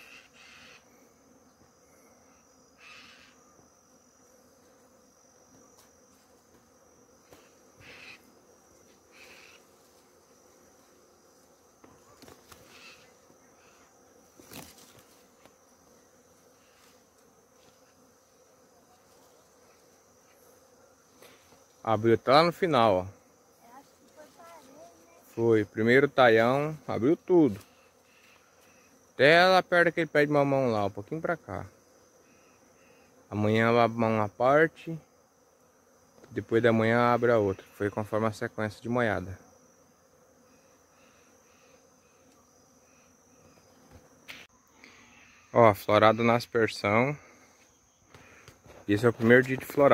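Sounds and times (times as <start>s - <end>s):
high-pitched insect sound: 0.0s - 35.0s, 36.0s - 49.9s
bees buzzing: 0.0s - 49.9s.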